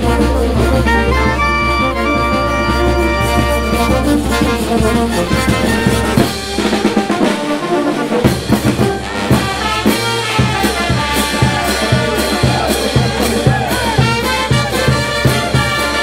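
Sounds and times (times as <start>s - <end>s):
bass drum and cymbals: 0.0s - 16.0s
brass band horns playing: 0.0s - 16.0s.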